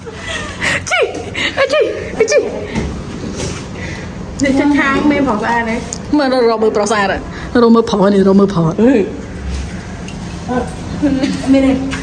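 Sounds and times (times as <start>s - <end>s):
woman speaking: 4.4s - 9.3s
woman chuckling: 11.0s - 11.8s.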